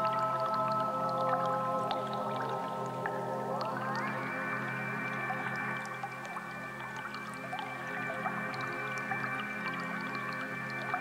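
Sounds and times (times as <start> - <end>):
synthesizer chord over drone: 0.0 - 11.0.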